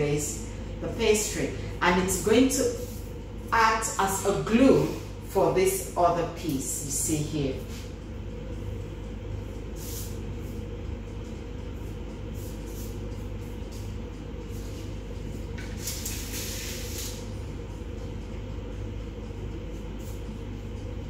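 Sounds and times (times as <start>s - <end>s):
low background hum: 0.0s - 21.0s.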